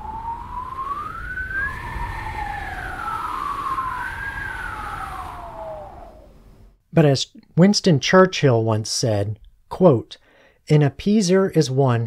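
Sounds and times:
howling wind whistling tones: 0.0s - 6.8s.

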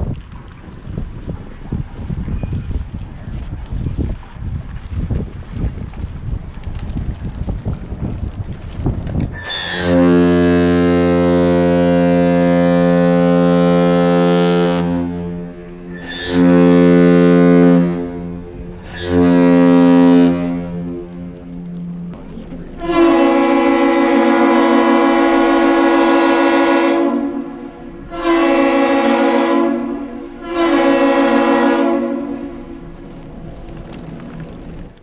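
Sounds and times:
wind buffeting microphone: 0.0s - 35.0s
deep ship horn blasts: 9.4s - 34.1s.

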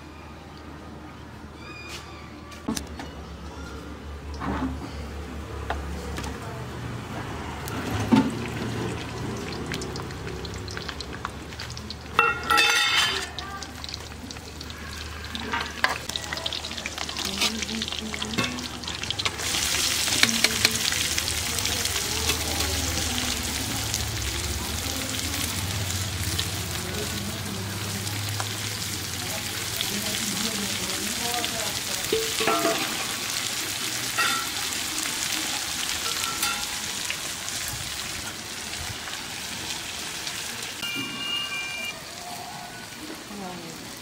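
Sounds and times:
onions sizzling in hot oil: 7.6s - 44.0s
steel utensils clinking: 11.9s - 22.9s, 32.1s - 33.3s, 34.1s - 34.6s, 36.0s - 36.9s.

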